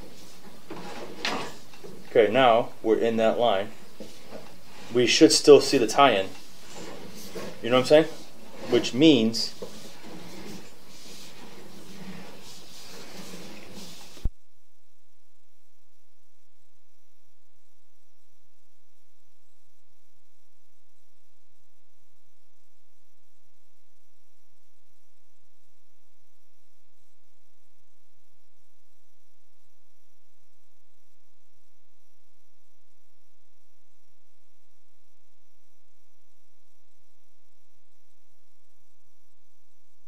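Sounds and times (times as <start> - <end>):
electrical hum and static: 0.0 - 40.0.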